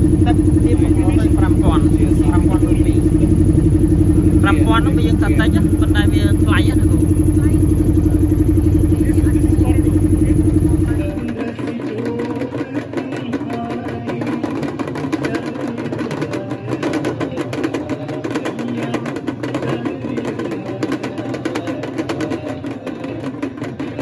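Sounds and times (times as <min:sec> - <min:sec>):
boat motor droning: 0:00.0 - 0:24.0
crowd voices: 0:00.0 - 0:24.0
fast percussion: 0:00.0 - 0:24.0.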